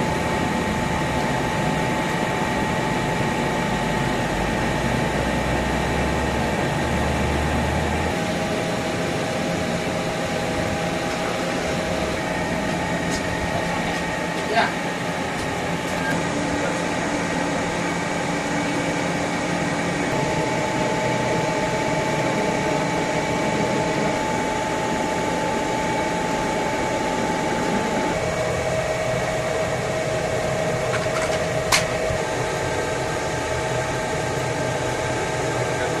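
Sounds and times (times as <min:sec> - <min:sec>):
fan-like machine whooshing: 0:00.0 - 0:36.0.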